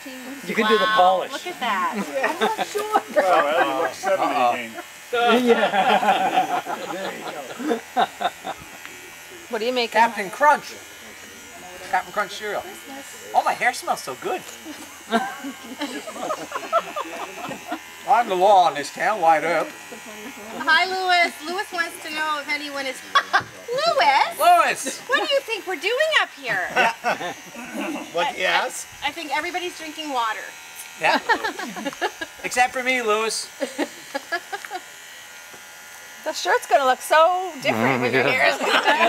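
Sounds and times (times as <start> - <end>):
quiet chatter: 0.0 - 32.5
electric hair clippers running: 0.0 - 39.0.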